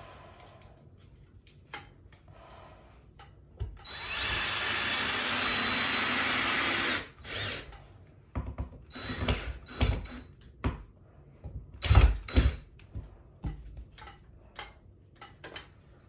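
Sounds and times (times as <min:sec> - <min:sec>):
cordless drill driving screw: 0:03.8 - 0:07.8, 0:08.9 - 0:10.3
irregular knocks and bumps: 0:08.3 - 0:10.0.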